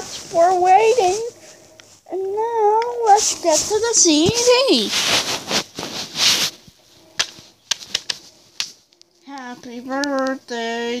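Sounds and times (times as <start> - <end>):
plastic case rustling and rubbing: 0.0 - 1.7, 3.0 - 8.8
sharp plastic clicks: 7.2 - 8.8.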